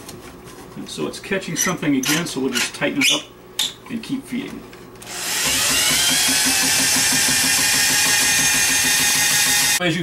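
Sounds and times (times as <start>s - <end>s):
drill motor whine: 5.1s - 9.8s.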